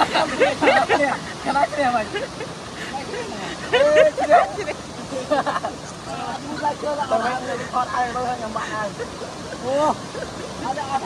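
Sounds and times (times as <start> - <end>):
men talking: 0.0 - 11.0
small waterfall pouring into pool: 0.0 - 11.0.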